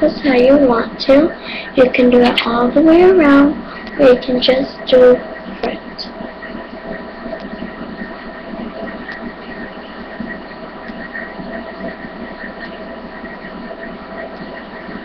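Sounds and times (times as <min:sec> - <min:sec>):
electrical hum and hiss: 0:00.0 - 0:15.0.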